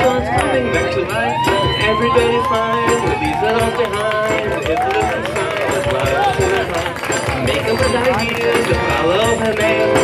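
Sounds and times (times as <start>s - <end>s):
bass drum beat: 0.0s - 10.0s
accordion melody: 3.5s - 10.0s.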